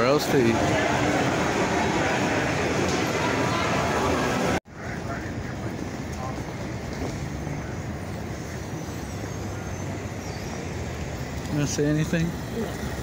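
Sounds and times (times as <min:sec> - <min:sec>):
crowd din: 0:00.0 - 0:10.6
street traffic noise: 0:00.0 - 0:13.0.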